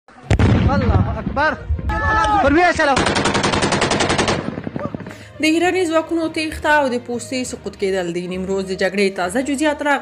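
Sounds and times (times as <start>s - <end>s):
automatic rifle fire: 3.0s - 5.2s.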